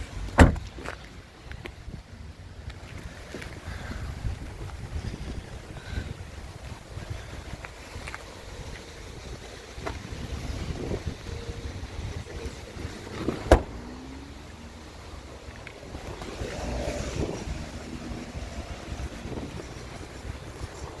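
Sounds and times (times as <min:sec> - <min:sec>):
wind buffeting microphone: 0:01.6 - 0:21.0.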